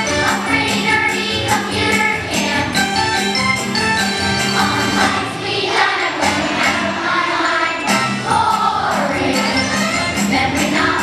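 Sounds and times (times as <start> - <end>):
children's choir singing: 0.0 - 3.4, 4.0 - 11.0.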